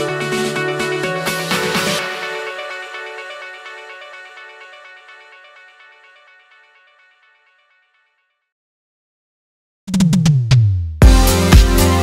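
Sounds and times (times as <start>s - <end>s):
electronic background music: 0.0s - 8.2s, 11.0s - 12.0s.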